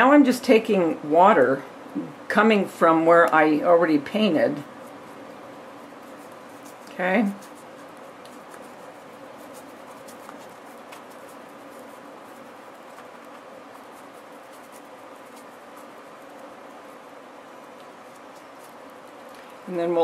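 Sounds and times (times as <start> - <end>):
room noise hiss: 0.0 - 20.0
paintbrush scratching: 3.4 - 20.0.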